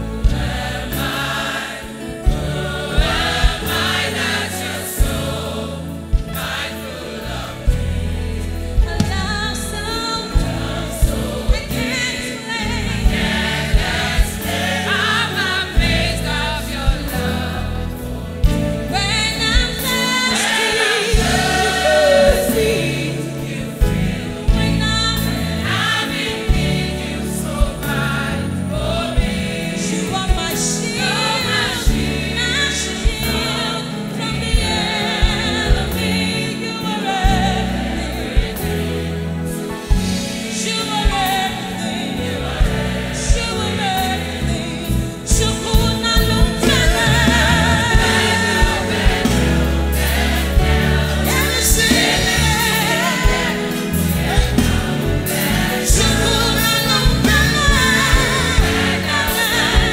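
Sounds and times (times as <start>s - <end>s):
gospel choir singing: 0.0s - 59.9s
live band with bass and drums: 0.0s - 59.9s
woman singing lead: 8.6s - 17.4s, 18.4s - 38.8s, 39.4s - 49.5s, 51.1s - 59.9s.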